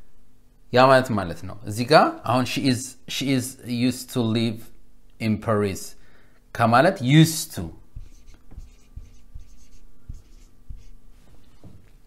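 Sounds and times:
marker tapping on whiteboard: 0:08.0 - 0:11.0
marker scratching on whiteboard: 0:08.0 - 0:11.8.

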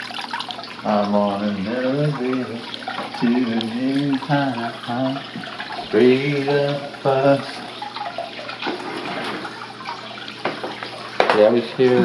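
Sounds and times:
aquarium filter water splashing: 0:00.0 - 0:12.0.

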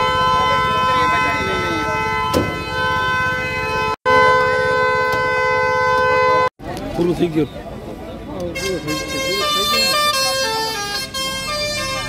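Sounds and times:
crowd voices: 0:00.0 - 0:03.4, 0:06.6 - 0:12.0
vehicle horns sounding: 0:00.0 - 0:06.5, 0:08.4 - 0:12.0.

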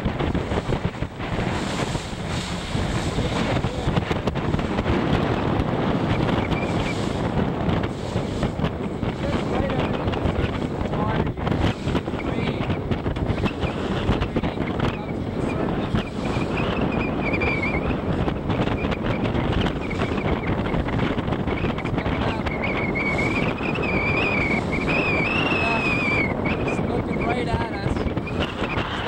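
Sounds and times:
boat engine: 0:00.0 - 0:29.0
water noise: 0:00.0 - 0:29.0
wind buffeting microphone: 0:00.0 - 0:29.0.

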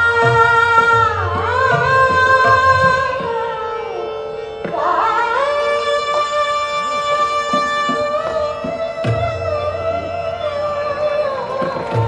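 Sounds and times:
harmonium: 0:00.0 - 0:12.0
tanpura drone: 0:00.0 - 0:12.0
woman singing a long wavering note: 0:04.8 - 0:07.5.

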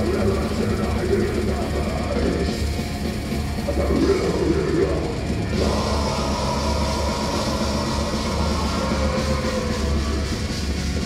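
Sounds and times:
drums: 0:00.0 - 0:11.0
heavily distorted guitars: 0:00.0 - 0:11.0.

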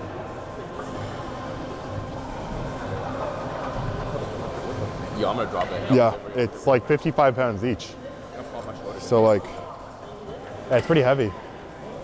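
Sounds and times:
background music: 0:00.0 - 0:12.0
gym room noise: 0:00.0 - 0:12.0.

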